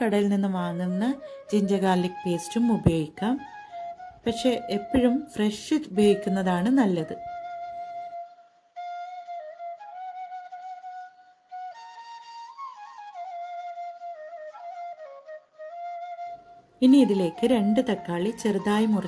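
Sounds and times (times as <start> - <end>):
solo flute melody: 0.6 - 19.0.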